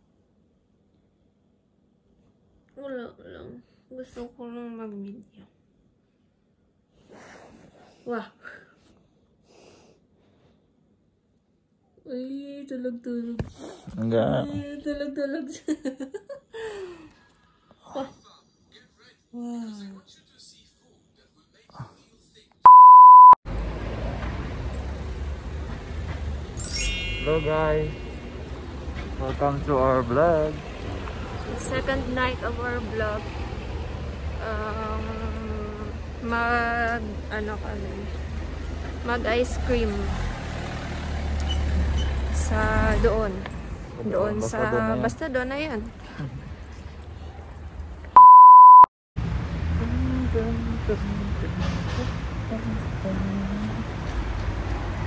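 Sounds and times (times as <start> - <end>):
electronic censor beep: 22.7 - 23.4, 48.2 - 48.9
street background noise: 23.0 - 48.2, 49.2 - 55.0
low outdoor rumble: 49.2 - 55.0.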